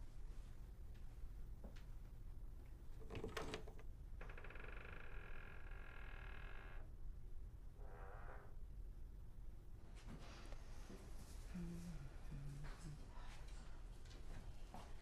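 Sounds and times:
long creak: 0:03.1 - 0:06.9, 0:07.8 - 0:08.6.

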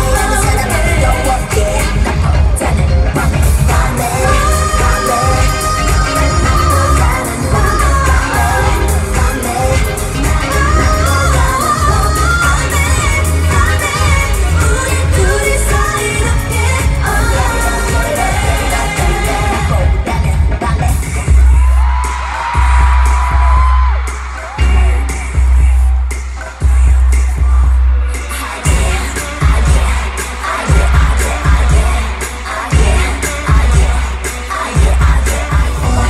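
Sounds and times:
woman singing: 0:00.0 - 0:22.2, 0:24.5 - 0:36.0
pop song through sound system: 0:00.0 - 0:36.0.

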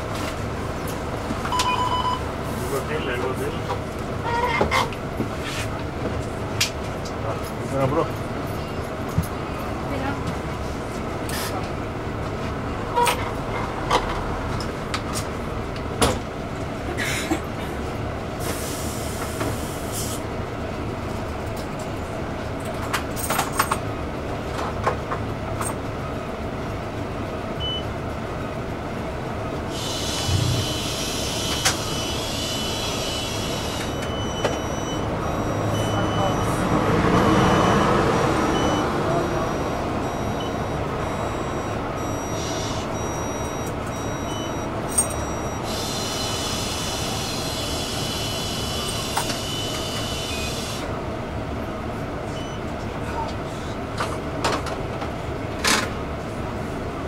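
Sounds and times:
bus engine idling: 0:00.0 - 0:57.0
short high beeps: 0:01.5 - 0:02.2, 0:33.9 - 0:36.7, 0:38.5 - 0:45.8.

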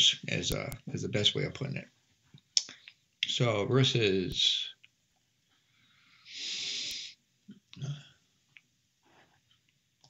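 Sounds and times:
man breathing through nose: 0:05.7 - 0:07.2.

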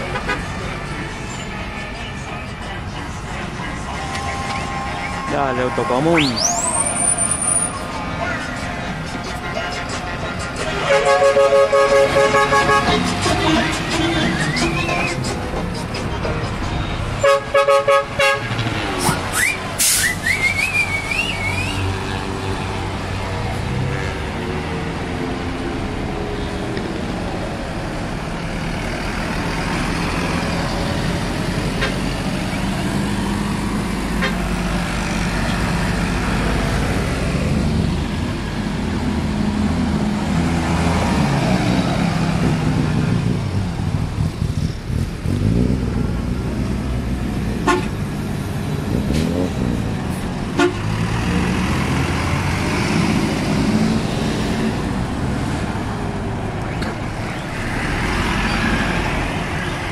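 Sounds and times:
bus horn toots: 0:00.0 - 0:00.7, 0:09.4 - 0:14.9, 0:16.2 - 0:22.6, 0:23.7 - 0:24.6, 0:31.6 - 0:32.1, 0:34.1 - 0:34.6, 0:47.6 - 0:48.0, 0:50.5 - 0:51.0
bus diesel engines passing: 0:00.0 - 0:59.9.

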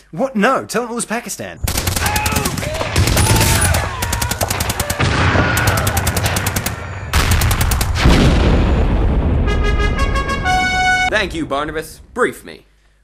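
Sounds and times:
machine-gun fire: 0:01.6 - 0:09.0
steady low rumble: 0:07.2 - 0:12.8.

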